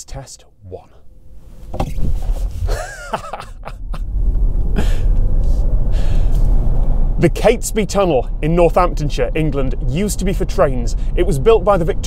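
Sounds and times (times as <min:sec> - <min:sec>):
faint rising whine: 0:00.4 - 0:12.0
road and wind rumble in car: 0:01.2 - 0:12.0
person laughing: 0:02.6 - 0:05.2.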